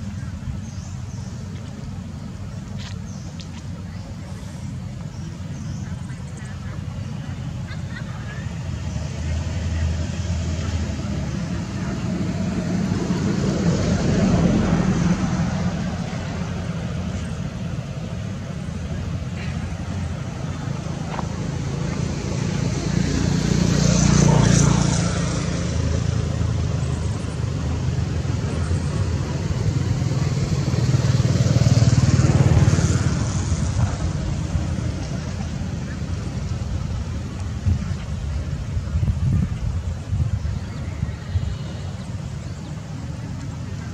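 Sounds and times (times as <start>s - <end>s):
motor vehicles passing: 0.0s - 43.9s
steady low rumble: 0.0s - 43.9s.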